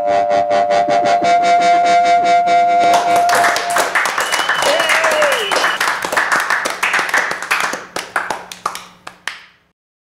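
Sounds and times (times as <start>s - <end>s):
audience clapping: 2.9s - 9.6s.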